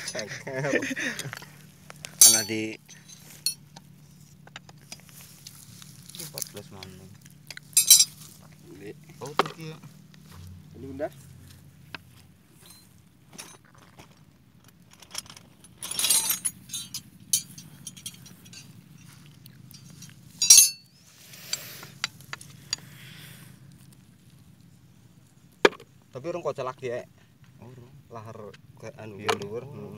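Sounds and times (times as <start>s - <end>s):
metal wrenches clinking: 0.0s - 0.3s, 2.1s - 3.7s, 7.5s - 8.2s, 14.9s - 22.8s.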